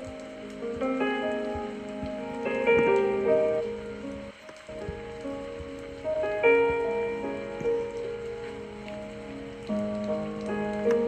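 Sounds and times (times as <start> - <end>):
rain-like patter: 0.0 - 11.0
soft held chords: 0.0 - 11.0.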